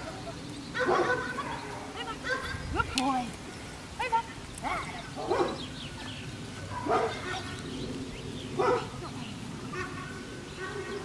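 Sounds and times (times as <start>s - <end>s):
dog barking: 0.8s - 1.4s, 5.2s - 5.6s, 6.8s - 7.3s, 8.6s - 8.9s.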